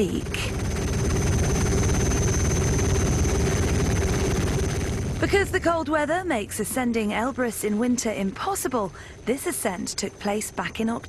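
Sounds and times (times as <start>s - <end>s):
helicopter rotor chopping: 0.0s - 11.0s
steady hum: 0.0s - 11.0s.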